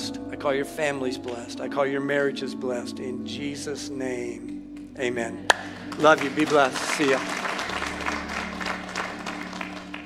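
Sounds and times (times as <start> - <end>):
low held chord: 0.0 - 10.0
congregation applauding: 5.5 - 10.0.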